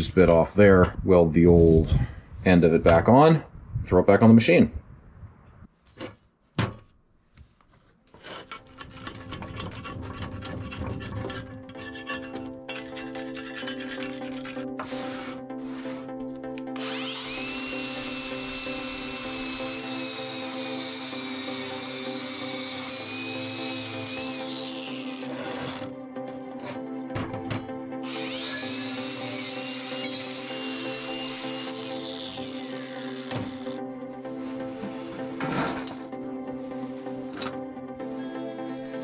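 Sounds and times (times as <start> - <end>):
angle grinder wire brush whine: 8.6 - 26.0, 28.0 - 36.0
background music: 8.6 - 39.0.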